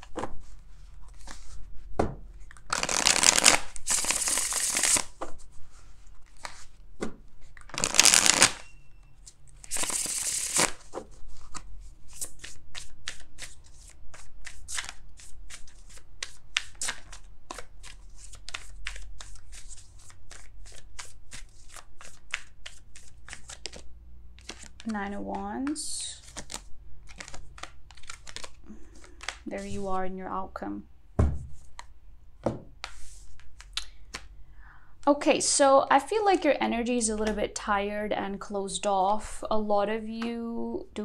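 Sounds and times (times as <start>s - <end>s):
cards being shuffled: 0.0s - 1.6s, 2.4s - 5.5s, 6.2s - 8.7s, 9.3s - 29.9s, 31.4s - 34.3s.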